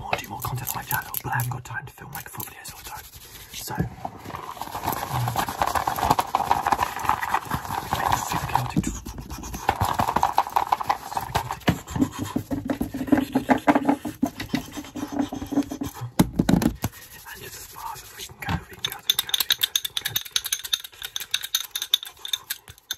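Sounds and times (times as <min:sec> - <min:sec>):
scratching close to microphone: 0:02.4 - 0:19.0.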